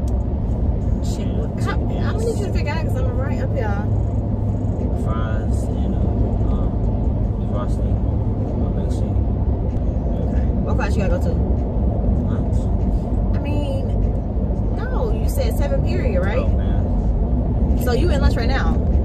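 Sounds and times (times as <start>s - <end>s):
road and engine rumble in car: 0.0s - 19.0s
voice with wavering pitch: 1.2s - 3.9s, 14.8s - 16.8s.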